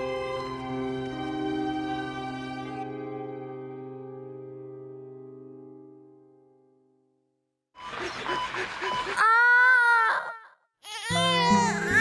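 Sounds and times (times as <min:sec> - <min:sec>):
baby crying: 0:09.2 - 0:12.0.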